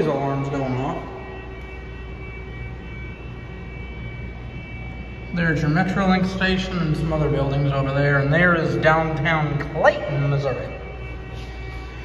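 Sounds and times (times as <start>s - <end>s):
alarm high tones: 0.0s - 12.0s
low hum: 0.0s - 12.0s.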